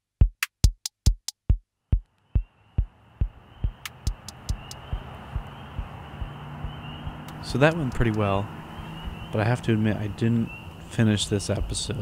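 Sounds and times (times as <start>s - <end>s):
electronic kick drum thumping: 0.0s - 7.2s.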